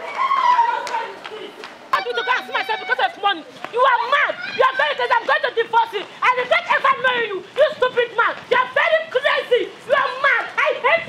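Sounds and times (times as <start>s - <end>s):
woman shouting high-pitched: 2.0s - 5.6s, 6.2s - 11.0s.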